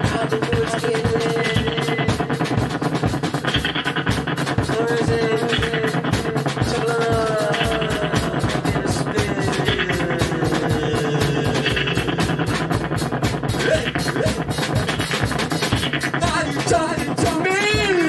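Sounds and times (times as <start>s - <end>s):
live band music: 0.0s - 18.0s.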